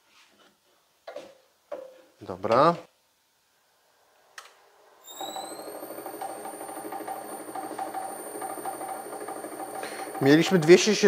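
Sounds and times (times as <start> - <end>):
drill press motor whining: 5.0 - 11.0.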